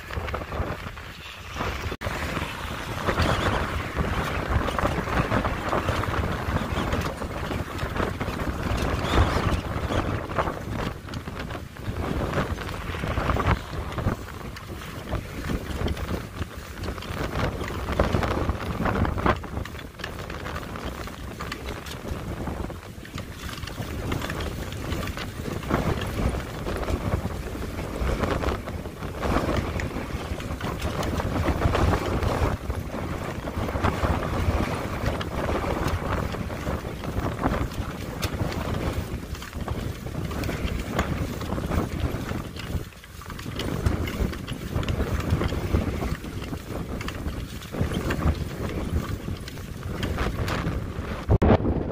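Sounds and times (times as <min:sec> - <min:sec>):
wind gusts buffeting microphone: 0:00.0 - 0:51.9.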